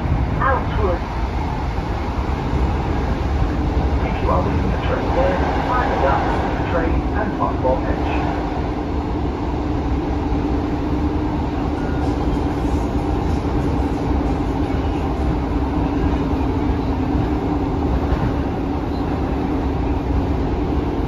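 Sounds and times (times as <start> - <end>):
train wheels rumbling on rails: 0.0 - 21.0.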